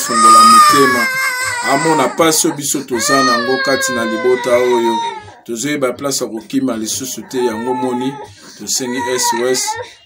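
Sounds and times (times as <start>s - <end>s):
infant crying: 0.0s - 5.7s, 6.7s - 10.0s
man's voice: 0.0s - 10.0s.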